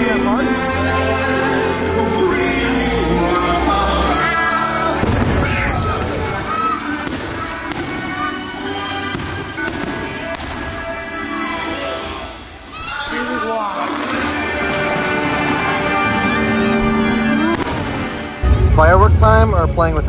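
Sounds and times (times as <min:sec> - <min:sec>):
fireworks show music: 0:00.0 - 0:20.0
firework boom: 0:05.0 - 0:06.4
deep rumble: 0:18.4 - 0:20.0.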